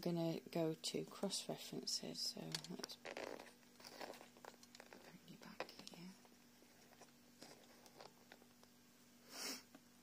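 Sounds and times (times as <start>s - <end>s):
phone handling rustle: 2.5s - 6.0s.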